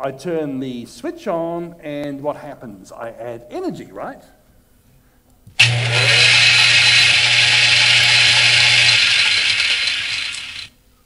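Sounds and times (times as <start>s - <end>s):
blender motor whirring: 5.6s - 10.7s.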